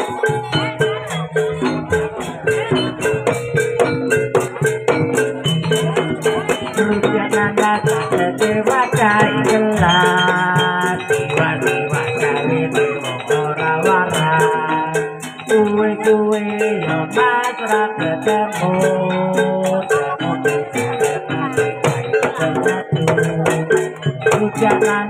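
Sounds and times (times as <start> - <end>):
steady beat: 0.0 - 25.0
wavering melody line: 0.0 - 25.0.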